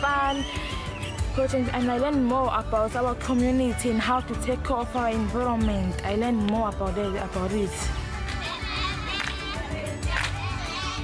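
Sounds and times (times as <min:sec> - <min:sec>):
children's voices and laughter: 0:08.4 - 0:09.8, 0:10.4 - 0:11.0.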